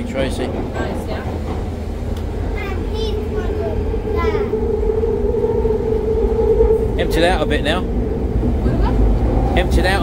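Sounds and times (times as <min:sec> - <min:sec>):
train rumbling through tunnel: 0:00.0 - 0:10.0
steady hum: 0:01.8 - 0:09.8.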